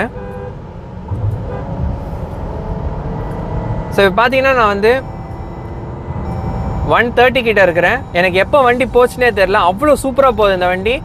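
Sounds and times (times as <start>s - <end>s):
car cabin rumble: 0.7s - 10.3s.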